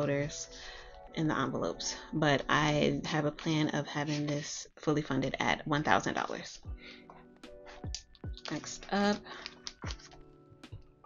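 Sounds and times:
soft background music: 0.0s - 11.0s
plastic envelopes and pages rustling: 3.9s - 4.5s, 7.7s - 10.3s.

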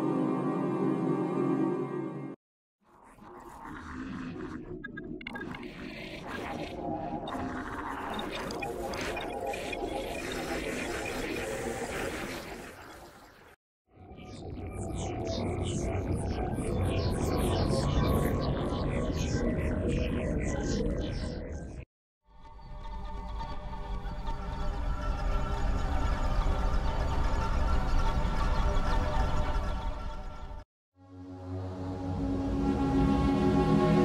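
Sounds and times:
grainy synthesizer texture: 22.6s - 34.0s.

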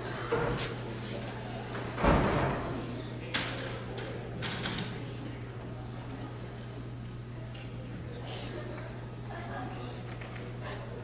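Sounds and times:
faint hall room noise: 0.0s - 11.0s
low electrical hum: 0.0s - 11.0s.

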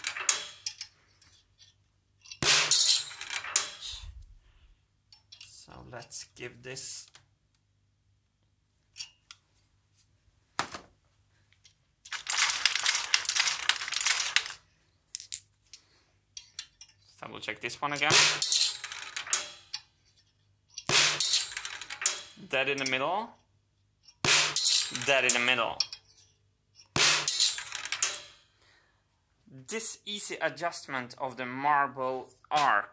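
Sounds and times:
dense metallic marble rattling: 0.0s - 4.1s, 12.0s - 15.5s, 17.9s - 19.9s, 20.8s - 23.0s, 24.4s - 26.2s, 27.0s - 28.4s.

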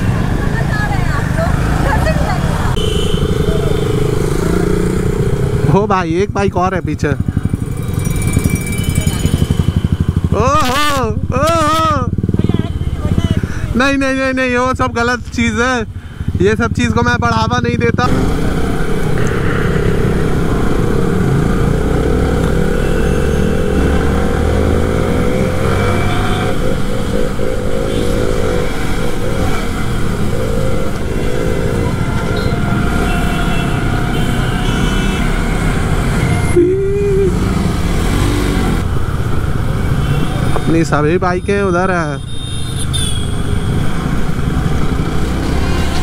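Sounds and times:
motorcycle engine running: 0.0s - 46.0s
wind and road noise: 0.0s - 46.0s.

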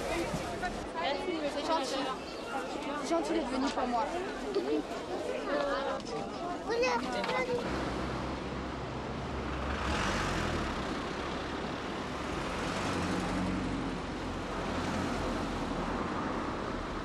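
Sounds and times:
vehicles passing on street: 0.0s - 17.0s.

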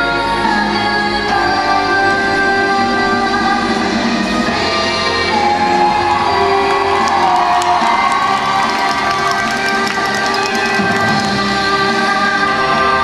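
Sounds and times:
music over loudspeakers: 0.0s - 13.0s
crowd cheering and whooping: 5.5s - 11.5s.

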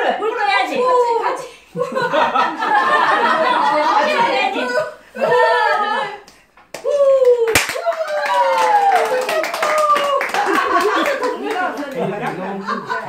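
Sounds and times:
people cheering: 5.2s - 12.9s
people clapping: 6.2s - 13.0s.

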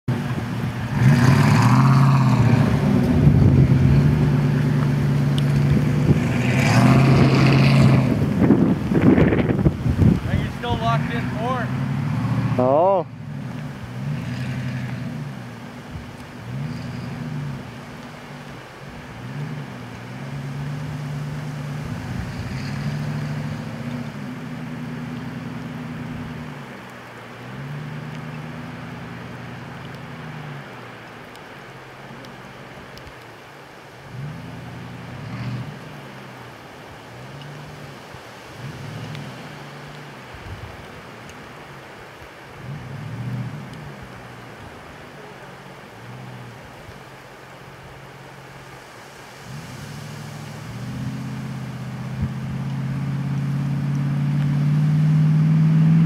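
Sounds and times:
truck engine revving: 0.0s - 30.9s, 34.0s - 40.2s, 42.5s - 44.4s, 49.4s - 56.0s.

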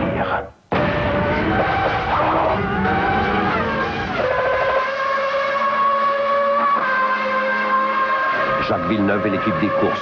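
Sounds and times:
racing car engine at high revs: 0.7s - 10.0s.

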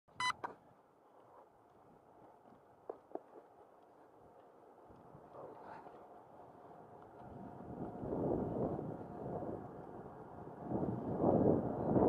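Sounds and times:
short electronic beep: 0.1s - 0.4s.

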